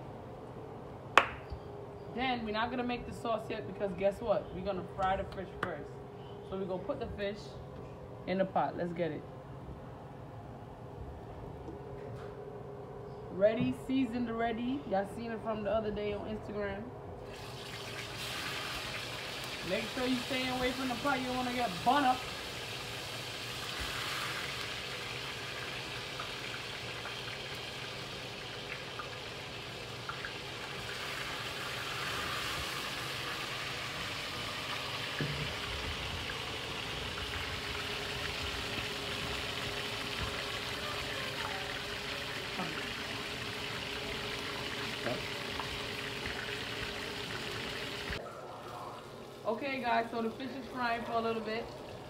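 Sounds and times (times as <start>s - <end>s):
fish sizzling in frying pan: 17.3s - 48.2s.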